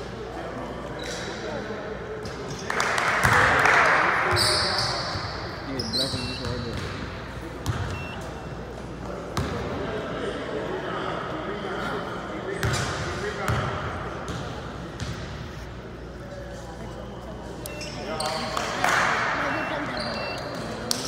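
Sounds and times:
spectators' voices: 13.9 - 21.0.

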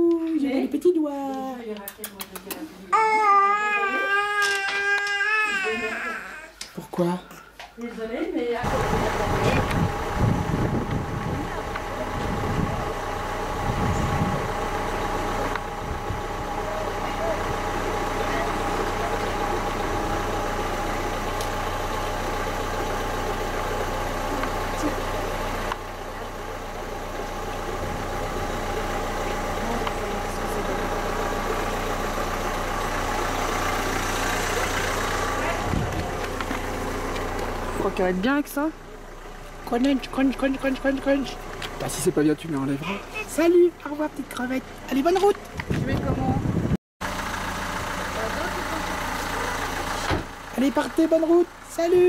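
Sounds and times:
car engine idling: 8.4 - 52.0.

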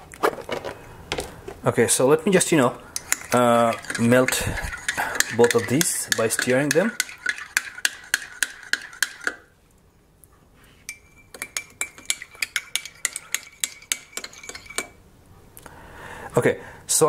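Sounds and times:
teaspoon clinking in mug: 3.0 - 9.4, 10.9 - 15.0.

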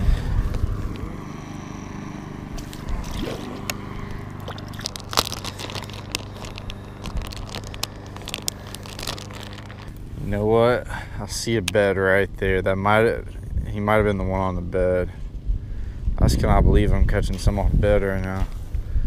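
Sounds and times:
plastic bag crinkling: 2.6 - 10.0.

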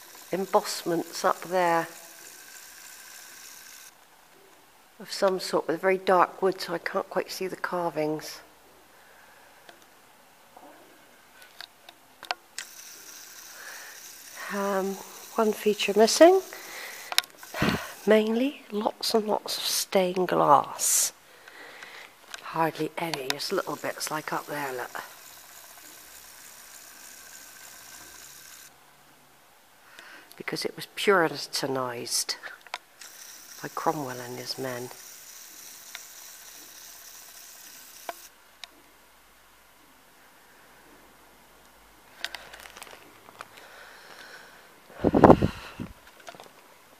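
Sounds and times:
steady hiss: 0.0 - 5.6, 12.5 - 28.8.

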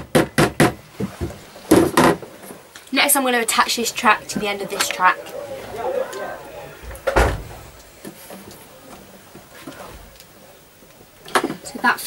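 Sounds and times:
thump on a baseboard: 7.1 - 7.6.

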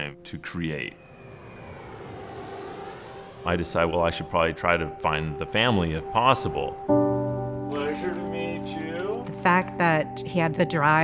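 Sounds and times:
faint high whine: 0.7 - 5.9
jet engine and air noise: 0.7 - 6.9.

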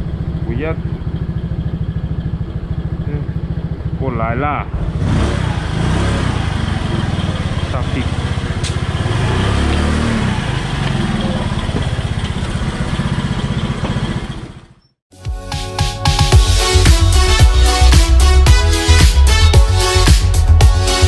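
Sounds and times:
motorcycle engine idling: 0.0 - 15.0.

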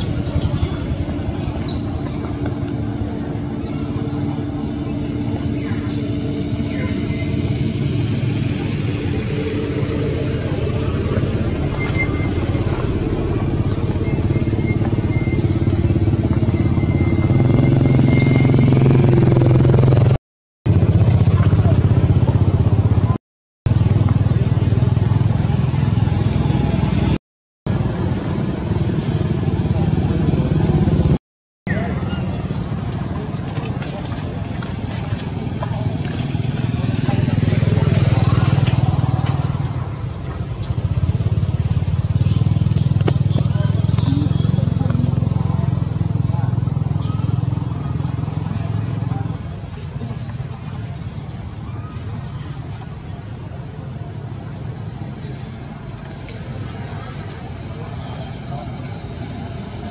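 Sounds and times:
voices: 0.0 - 19.4, 20.8 - 23.2, 28.3 - 59.9
engine humming: 0.0 - 59.9.

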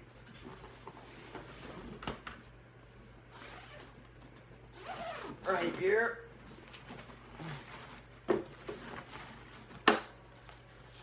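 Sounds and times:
soft handling rustle: 3.4 - 11.0.

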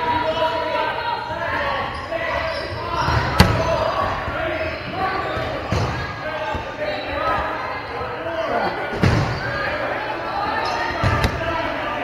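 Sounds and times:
players' voices: 0.0 - 12.0
dodgeballs bouncing and smacking: 2.9 - 4.4, 11.0 - 11.6.

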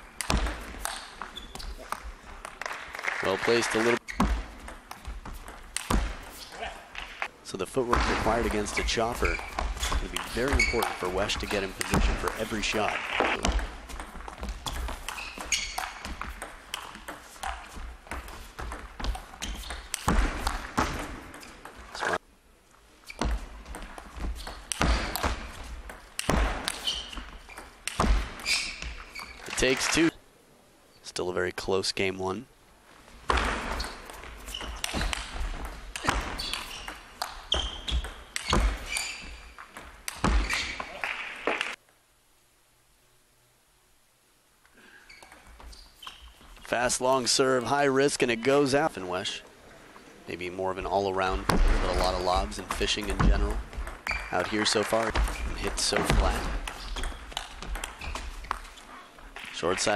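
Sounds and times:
table tennis ball hits: 0.2 - 2.7, 4.2 - 6.3, 7.9 - 21.8, 51.5 - 58.7
short high squeaks: 8.6 - 11.1, 14.7 - 16.1, 26.7 - 27.8, 28.4 - 30.1, 33.7 - 35.2, 36.0 - 39.6, 40.2 - 41.0, 45.0 - 46.6, 54.0 - 54.4, 56.7 - 59.2.

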